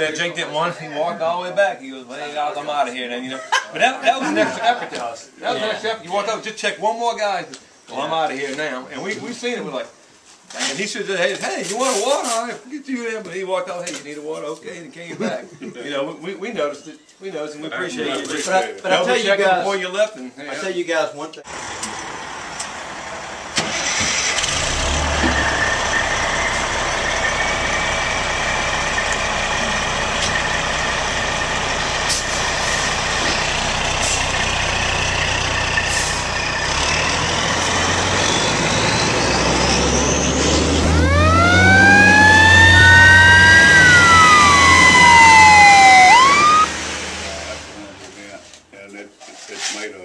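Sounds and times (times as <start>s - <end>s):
rising whine: 21.5s - 33.9s, 36.5s - 47.8s
fire engine siren wailing: 21.5s - 47.7s
diesel engine running: 21.5s - 48.0s.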